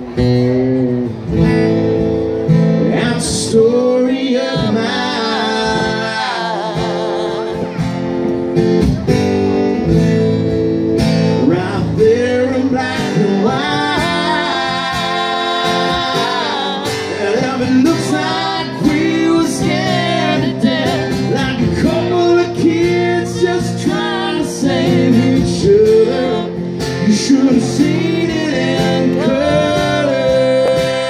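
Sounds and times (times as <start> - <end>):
strummed acoustic guitar: 0.0 - 31.0
man singing a country ballad: 2.8 - 7.9, 11.2 - 31.0.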